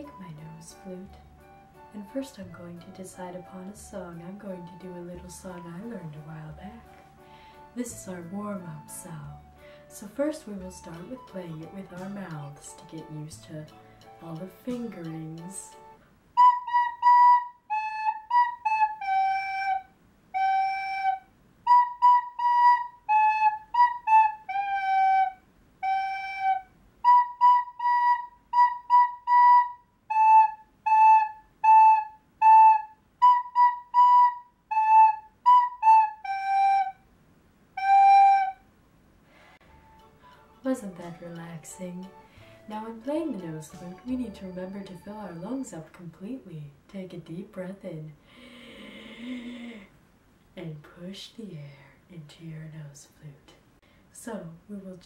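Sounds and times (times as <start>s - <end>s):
person breathing in deeply: 7.2s - 7.7s, 48.2s - 49.9s
recorder playing simple tune: 14.7s - 37.0s, 37.8s - 38.6s, 39.6s - 45.7s.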